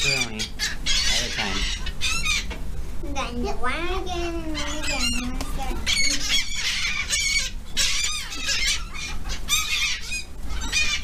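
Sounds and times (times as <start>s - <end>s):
gulls squawking: 0.0s - 2.6s, 4.0s - 11.0s.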